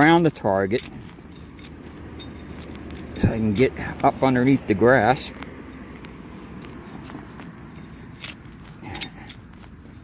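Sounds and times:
hand tool scraping through turf: 0.0s - 10.0s
sharp clicks: 2.4s - 9.9s.

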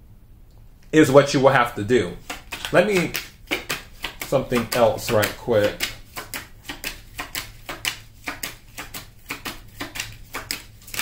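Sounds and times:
cards being shuffled: 2.2s - 11.0s.

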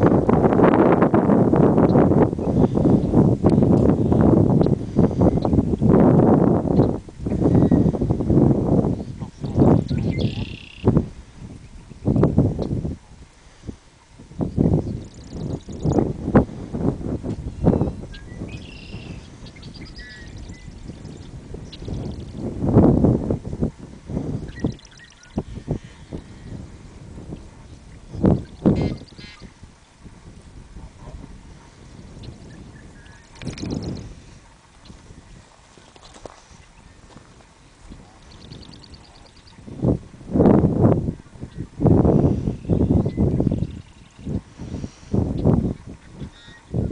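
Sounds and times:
wind buffeting microphone: 0.0s - 46.9s
faint bird calls: 9.0s - 11.0s, 17.6s - 22.4s, 28.2s - 29.6s, 42.3s - 46.8s.

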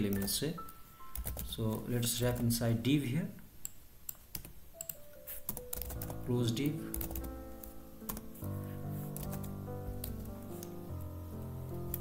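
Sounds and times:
computer keyboard typing: 0.0s - 2.6s, 3.6s - 12.0s.

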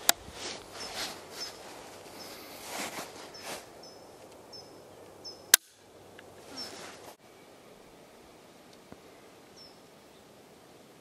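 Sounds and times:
small birds chirping: 0.7s - 10.4s.

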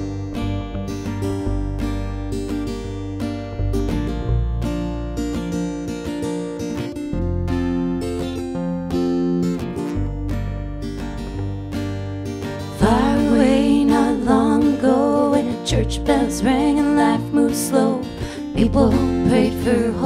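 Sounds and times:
acoustic guitar strumming chords: 0.0s - 20.0s
slide guitar long notes: 0.0s - 20.0s.

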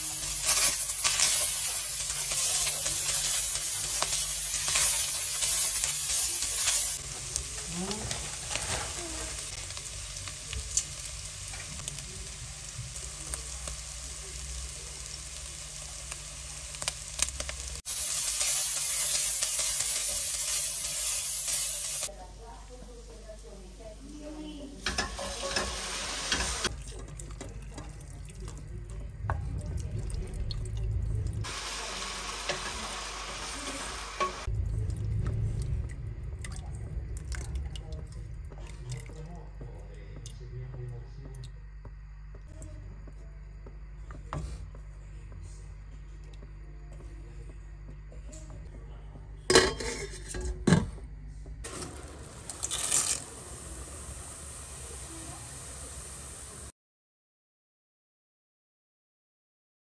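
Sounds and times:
sauce pouring into pot: 51.7s - 56.5s.

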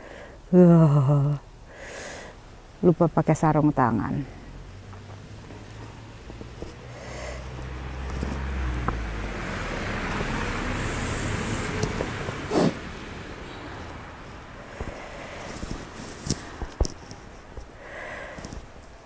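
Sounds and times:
car tyres on wet road: 4.4s - 19.0s.

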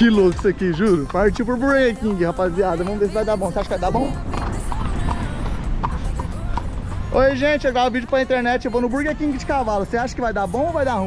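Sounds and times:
horse hooves on asphalt: 0.0s - 11.0s
street noise rumble: 0.0s - 11.0s.

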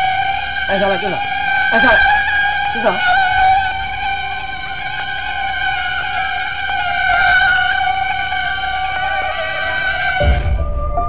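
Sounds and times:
buzzing drone: 0.0s - 11.0s.

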